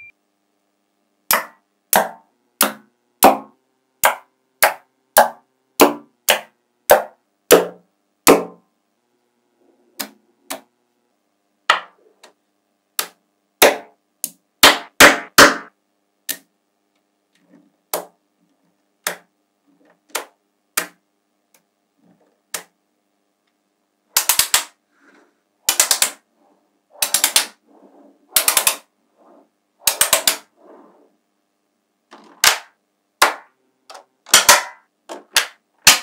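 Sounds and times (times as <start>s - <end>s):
magnetic balls clacking: 24.1s - 24.8s, 25.6s - 26.3s, 26.9s - 27.6s, 28.3s - 28.9s, 29.8s - 30.5s.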